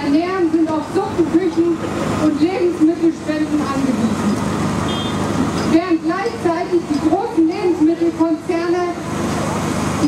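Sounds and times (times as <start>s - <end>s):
woman speaking over loudspeaker: 0.0s - 4.3s, 5.7s - 9.0s
steady background noise: 0.0s - 10.0s.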